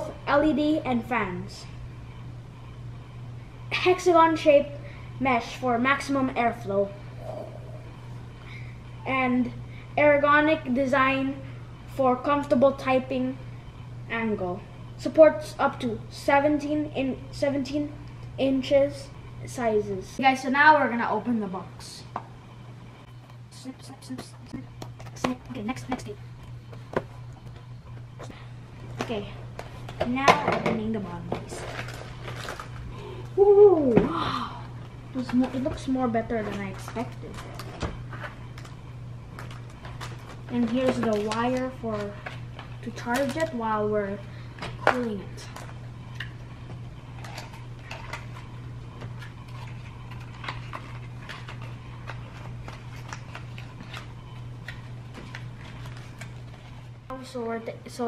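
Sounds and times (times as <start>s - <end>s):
steady low hum: 0.0s - 58.0s
packaging clicks and crinkles: 31.5s - 32.9s, 39.4s - 43.6s, 47.2s - 56.8s.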